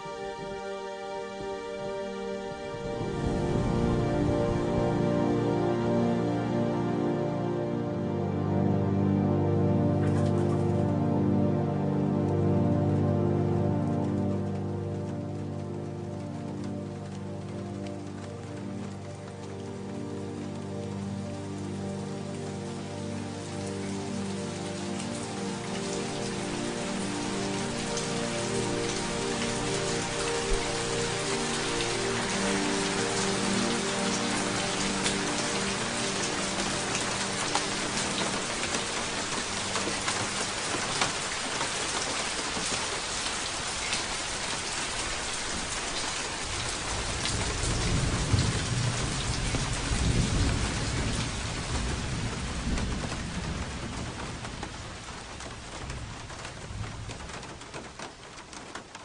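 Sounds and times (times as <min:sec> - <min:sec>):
held musical chord: 0:00.0 - 0:49.4
steady rain: 0:00.0 - 0:59.0
thunder rumbling: 0:02.9 - 0:05.0, 0:46.6 - 0:57.7.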